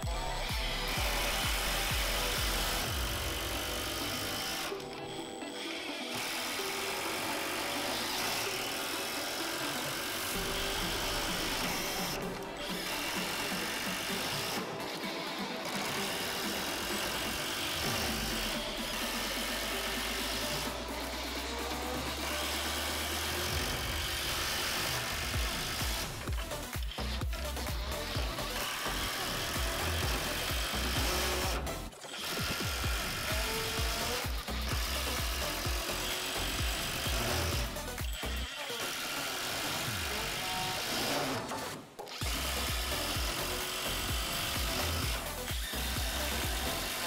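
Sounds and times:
background music: 0:00.0 - 0:47.0
impact drivers driving screws: 0:00.0 - 0:47.0.

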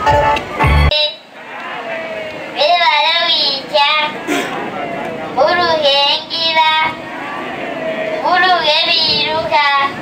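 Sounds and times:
girl singing over loudspeakers: 0:08.2 - 0:10.0.

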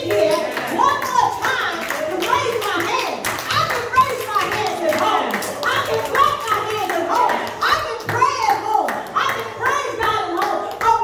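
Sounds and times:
hand claps: 0:00.0 - 0:11.0
loud excited speech: 0:00.0 - 0:11.0.

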